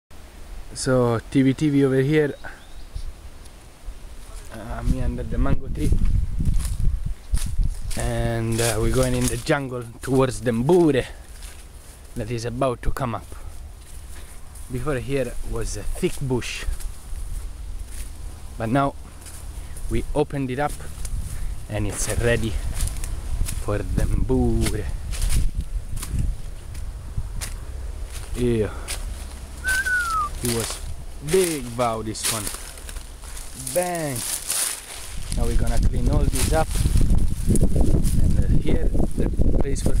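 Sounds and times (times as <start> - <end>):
wind rumble on microphone: 2.8 - 9.6, 13.7 - 31.2, 34.2 - 40.0
footsteps through undergrowth: 3.1 - 40.0
leaves and stems snapping: 20.9 - 23.7, 26.0 - 37.7.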